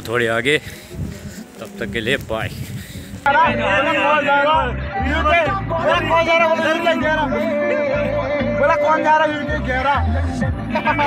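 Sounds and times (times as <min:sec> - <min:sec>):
song with sung vocals: 0:03.2 - 0:11.0.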